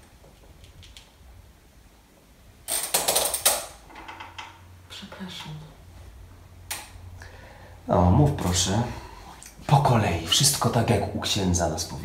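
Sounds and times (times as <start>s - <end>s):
chair creaking and rattling: 2.6s - 4.7s.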